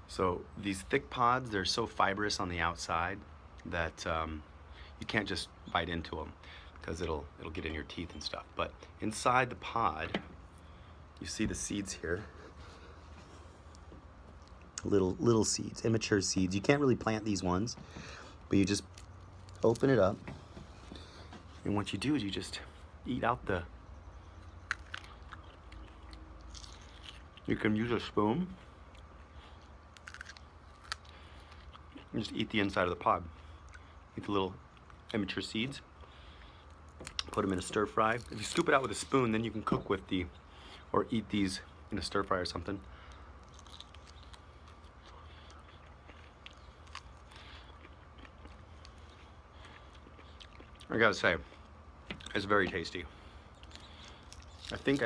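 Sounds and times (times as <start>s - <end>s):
low background hum: 0.0s - 55.0s
mouth sounds of eating: 21.0s - 55.0s
person chewing: 24.4s - 27.5s, 28.6s - 32.2s, 36.0s - 39.0s, 43.0s - 52.4s, 53.1s - 55.0s.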